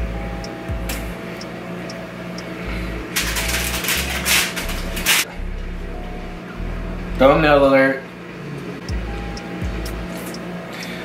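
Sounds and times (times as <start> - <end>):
background music with bass beat: 0.0 - 1.2, 8.8 - 10.5
aluminium foil crinkling: 3.2 - 5.3.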